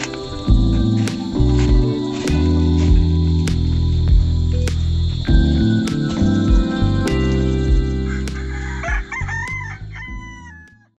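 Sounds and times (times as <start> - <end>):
background music with low drone: 0.0 - 10.9
rooster crowing: 7.7 - 11.0.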